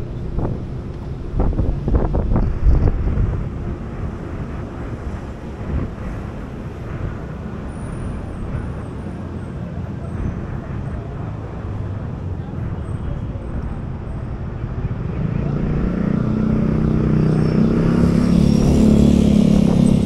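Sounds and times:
approaching vehicle engines: 0.0 - 20.0
city traffic rumble: 0.0 - 20.0.

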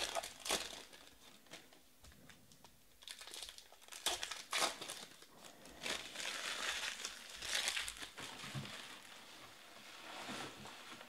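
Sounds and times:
foil wrapper crinkling: 0.0 - 1.8, 3.0 - 9.1.

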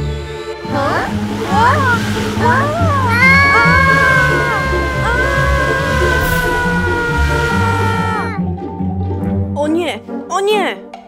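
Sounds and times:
cartoon background music: 0.0 - 11.0
rushing wind from hair dryer: 0.9 - 8.4
high held note sliding down: 1.6 - 8.4.

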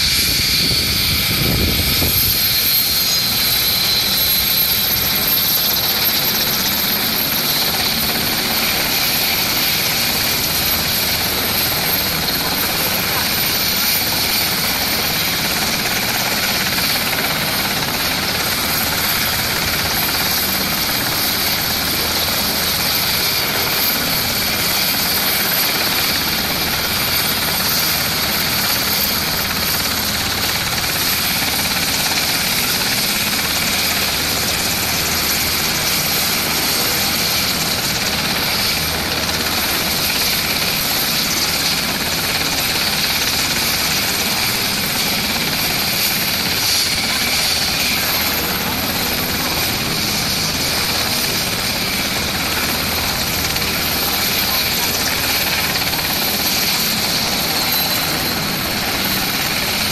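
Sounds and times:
helicopter rotor and turbine whine: 0.0 - 59.9.

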